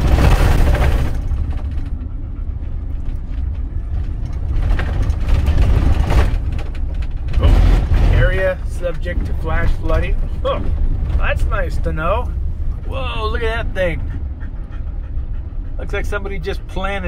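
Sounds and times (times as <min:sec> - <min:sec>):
engine and tyre rumble on gravel: 0:00.0 - 0:17.0.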